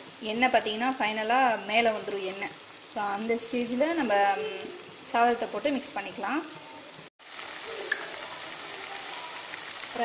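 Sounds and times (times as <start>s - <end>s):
paste sizzling in oil: 0.0s - 10.0s.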